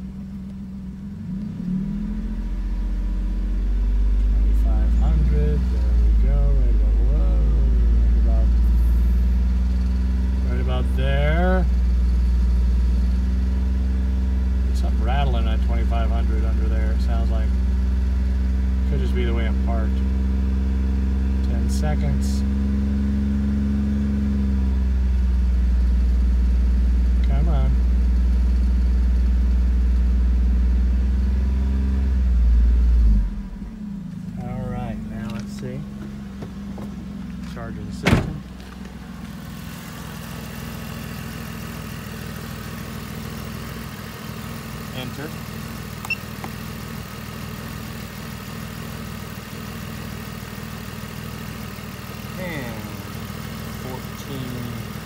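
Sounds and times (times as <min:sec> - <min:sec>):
car engine revving then idling: 0:00.0 - 0:55.0
rattle from under car: 0:34.0 - 0:44.3
loud thump: 0:38.0 - 0:38.5.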